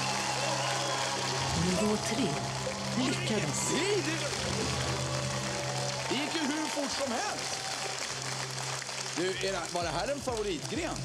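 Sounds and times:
audience applauding and cheering: 0.0s - 11.0s.

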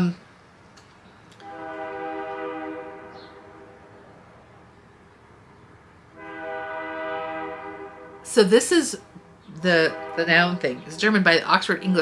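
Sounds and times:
train horn blasts: 1.4s - 4.3s, 6.1s - 8.9s, 9.5s - 11.0s.

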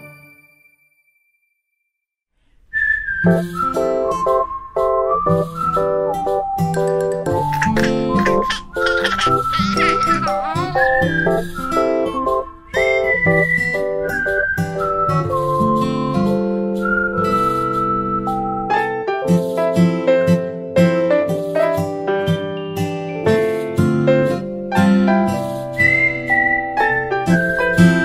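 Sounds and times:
whistled tune: 2.7s - 19.6s, 25.4s - 28.0s.

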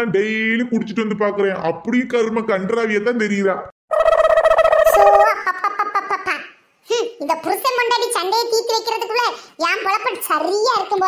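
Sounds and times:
high-pitched cartoon voice: 4.6s - 11.0s.

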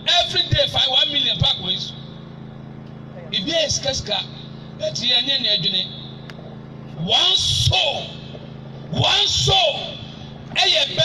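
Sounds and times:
man's voice over loudspeaker: 0.0s - 2.2s, 3.3s - 6.2s, 7.0s - 8.3s, 8.9s - 11.0s
steady low hum: 0.0s - 11.0s.

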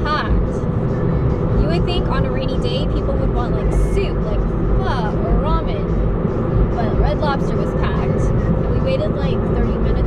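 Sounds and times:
woman's voice: 0.0s - 0.6s, 1.6s - 6.0s, 6.8s - 10.0s
road and engine rumble in car: 0.0s - 10.0s.

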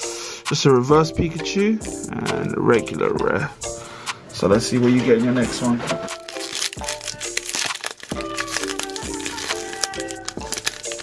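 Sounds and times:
background music: 0.0s - 11.0s
foil wrapper crinkling and tearing: 6.0s - 11.0s.

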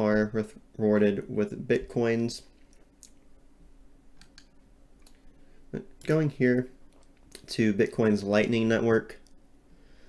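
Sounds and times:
computer mouse clicks: 4.2s - 5.2s.

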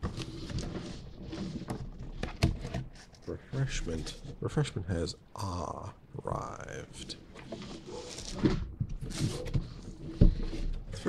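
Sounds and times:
cardboard rustling: 0.0s - 4.4s, 7.4s - 11.0s.

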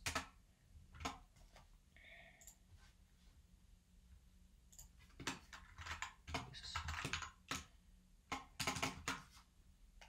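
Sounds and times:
computer keyboard typing: 0.0s - 1.3s, 4.7s - 7.7s, 8.3s - 9.3s.

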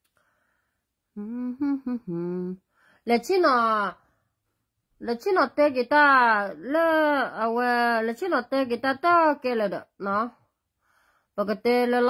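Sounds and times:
woman humming: 1.2s - 2.6s.

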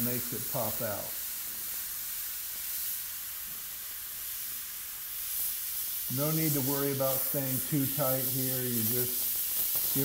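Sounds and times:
airbrush hissing: 0.0s - 10.0s.

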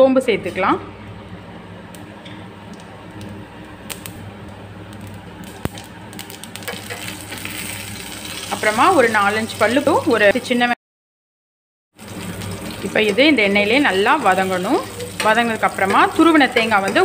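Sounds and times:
seeds sizzling in oil: 4.9s - 10.0s, 12.0s - 17.0s.

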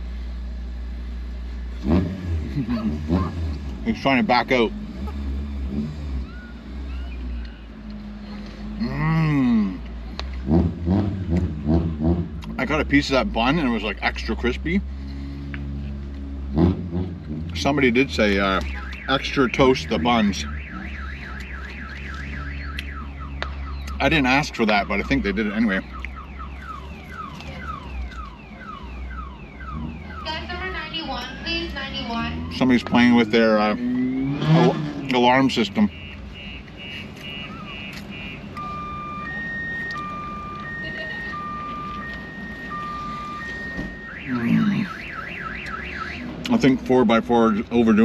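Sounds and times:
car alarm siren warbling: 16.6s - 48.0s.

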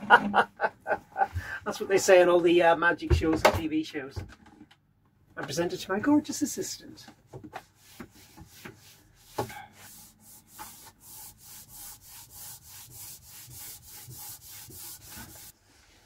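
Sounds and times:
cloth wiping wooden panel: 7.6s - 16.0s.

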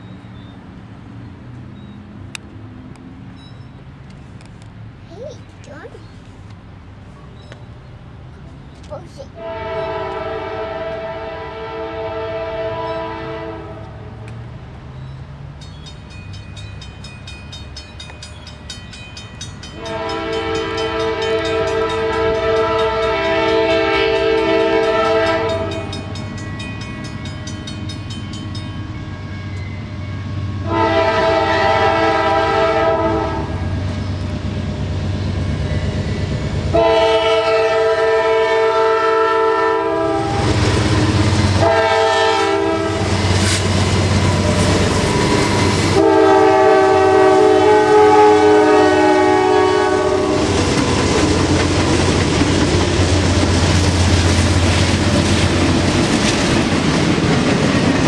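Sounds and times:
train wheel noise: 0.0s - 58.0s
locomotive horn blasts: 9.4s - 14.0s, 19.8s - 26.2s, 30.6s - 33.6s, 36.7s - 40.6s, 41.6s - 43.1s, 44.4s - 50.6s.

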